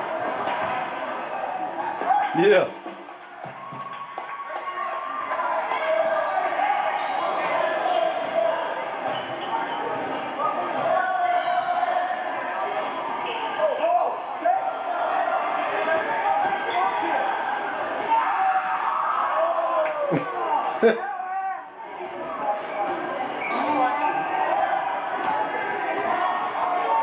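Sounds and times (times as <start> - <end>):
crowd voices in a hall: 0.0 - 27.0.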